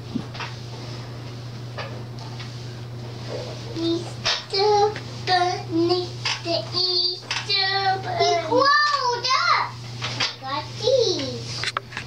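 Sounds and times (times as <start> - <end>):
steady low hum: 0.0 - 12.0
girl singing in high voice: 3.8 - 9.8.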